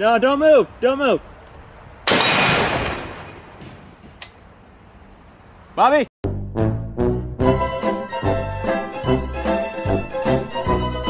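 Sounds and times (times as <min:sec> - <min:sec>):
rifle shot echo: 0:02.1 - 0:03.9.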